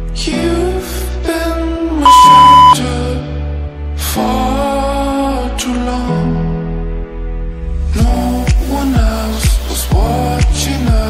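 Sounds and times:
background music: 0.0 - 11.0
loud electronic beep: 2.0 - 2.8.

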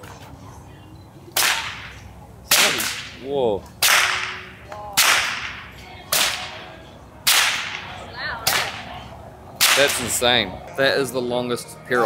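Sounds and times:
whip cracking: 1.4 - 1.9, 2.5 - 3.2, 3.8 - 4.4, 5.0 - 6.6, 7.3 - 7.9, 8.5 - 8.8, 9.6 - 10.1.

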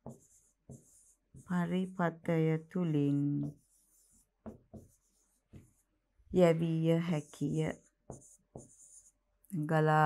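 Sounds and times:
pen scraping on board: 0.0 - 1.6, 3.4 - 5.9, 7.2 - 9.2.

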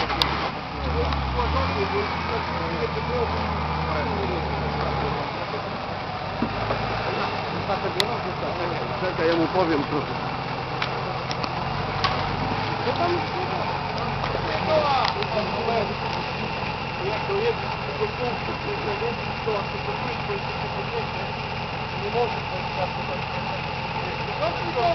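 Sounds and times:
diesel engine running at low revs: 0.0 - 24.9
onlookers' voices: 0.0 - 24.9.

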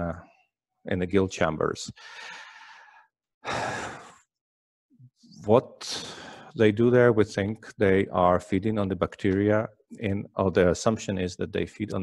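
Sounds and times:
man breathing: 1.9 - 4.2, 5.9 - 6.6.

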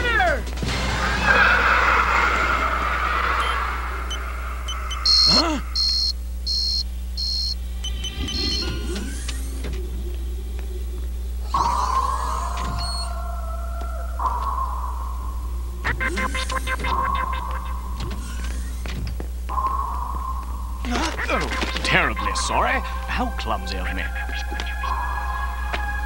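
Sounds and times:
low steady hum: 2.7 - 26.0.

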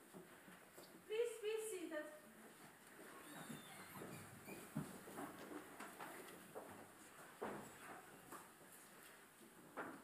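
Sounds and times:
faint rustles and knocks: 0.0 - 1.1, 2.3 - 10.0.

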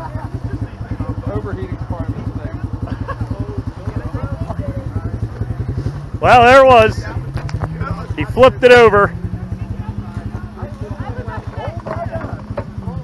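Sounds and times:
pickup engine idling: 0.0 - 13.0
voices talking: 0.0 - 13.0.

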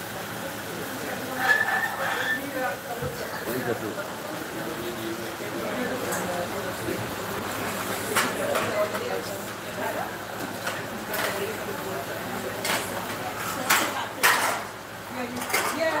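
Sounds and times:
people chatting: 0.0 - 16.0.

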